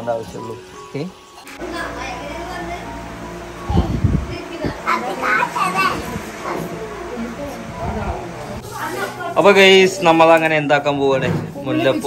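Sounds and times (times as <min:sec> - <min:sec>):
young children talking and babbling: 0:01.5 - 0:07.9, 0:08.6 - 0:09.4.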